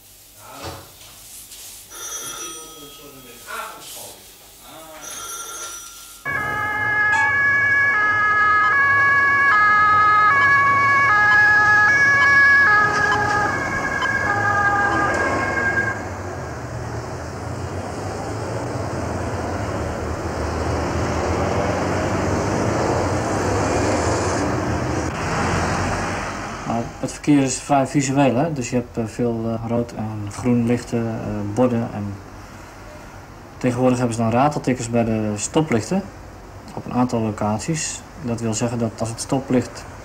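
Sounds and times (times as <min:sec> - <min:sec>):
held high electronic tone: 0:05.0 - 0:16.1
road traffic passing: 0:06.2 - 0:36.8, 0:38.0 - 0:40.0
electronic tones stepping in pitch: 0:06.3 - 0:16.1.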